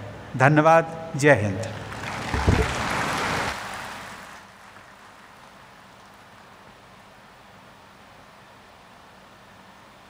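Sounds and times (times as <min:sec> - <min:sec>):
audience applauding: 0:01.8 - 0:05.9
low thumps: 0:02.3 - 0:03.1.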